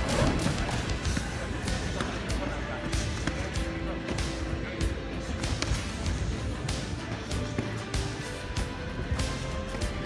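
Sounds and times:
voices: 0:00.0 - 0:08.4
background music: 0:00.0 - 0:10.0.

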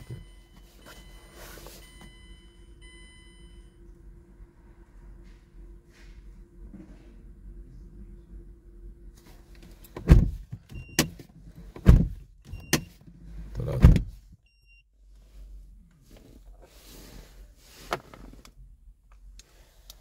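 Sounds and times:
car door shutting: 0:09.8 - 0:13.0, 0:13.6 - 0:14.2.

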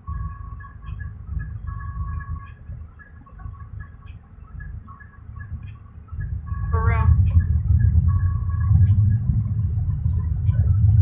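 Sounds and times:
car idling rumble: 0:00.0 - 0:11.0.

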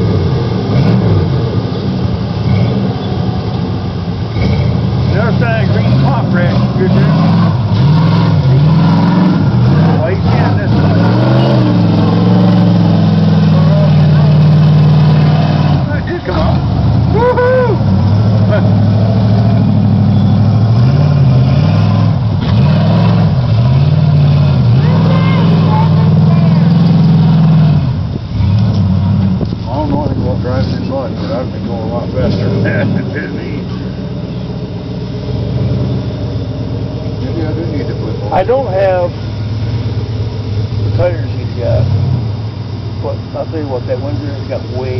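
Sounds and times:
truck engine revving: 0:00.0 - 0:44.9.

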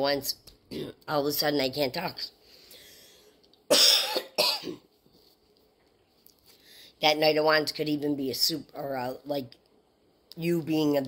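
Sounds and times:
woman coughing: 0:03.7 - 0:04.9.

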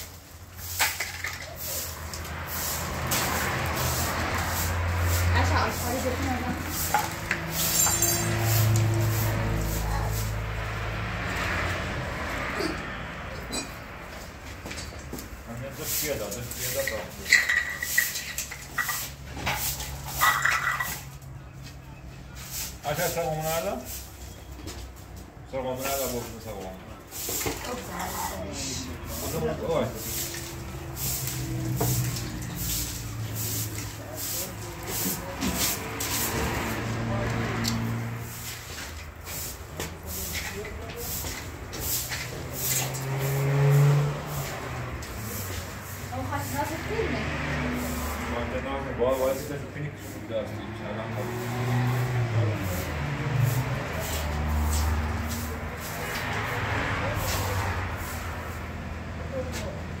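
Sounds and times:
broom sweeping concrete floor: 0:00.0 - 1:00.0
people talking: 0:05.1 - 0:07.1, 0:08.5 - 0:10.4, 0:15.5 - 0:17.6, 0:22.8 - 0:23.9, 0:25.5 - 0:30.6, 0:32.6 - 0:37.9, 0:39.7 - 0:41.8, 0:44.3 - 0:57.8, 0:59.2 - 1:00.0.

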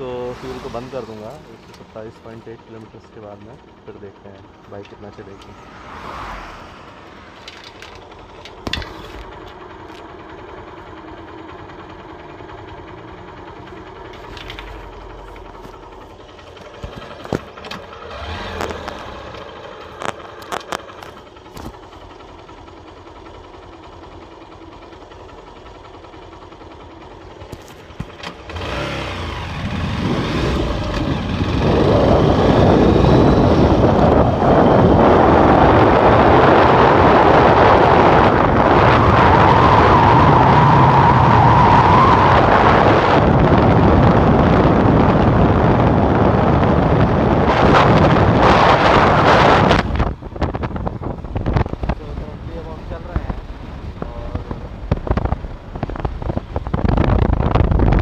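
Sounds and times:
motorcycle engine idling: 0:00.0 - 0:06.0, 0:06.7 - 0:34.6
wind rushing on microphone: 0:29.3 - 0:58.0.

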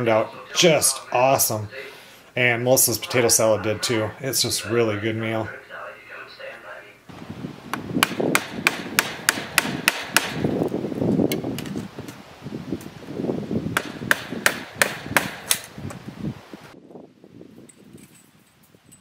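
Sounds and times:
hammer striking wood: 0:07.7 - 0:10.5, 0:13.8 - 0:15.7.

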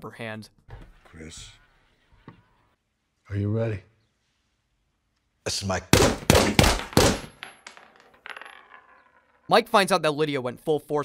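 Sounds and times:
pistol shot: 0:06.0 - 0:07.3
shell casings bouncing on wood floor: 0:06.3 - 0:09.5.

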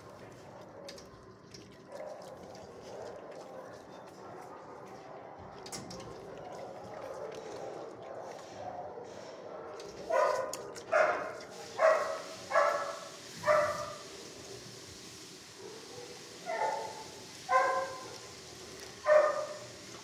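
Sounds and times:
dog barking: 0:01.9 - 0:05.2, 0:07.0 - 0:14.1, 0:15.6 - 0:18.3, 0:19.0 - 0:19.7.

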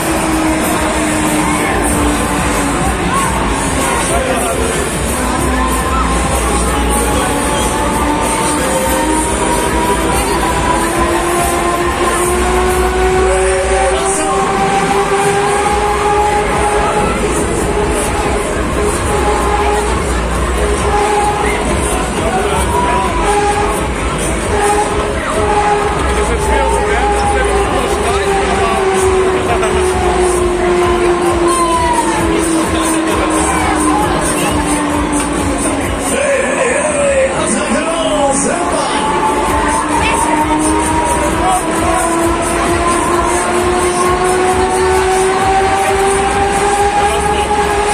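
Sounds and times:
fairground ride running: 0:00.0 - 0:47.9
loud dance music: 0:00.0 - 0:47.9
loud held tones over sound system: 0:00.0 - 0:47.9.

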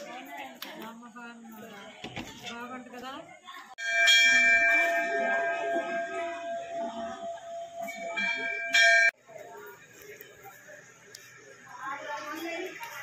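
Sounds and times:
metal temple bell ringing: 0:03.8 - 0:09.2.

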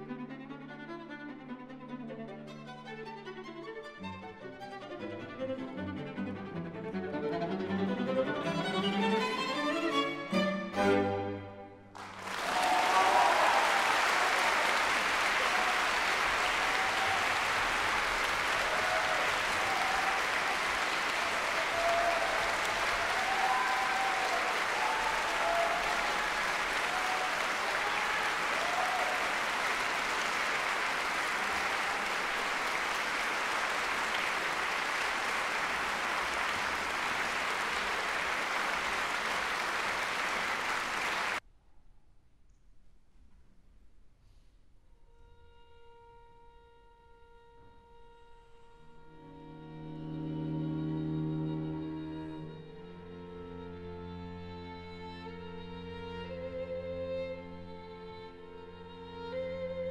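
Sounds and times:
audience applauding: 0:11.9 - 0:41.4.

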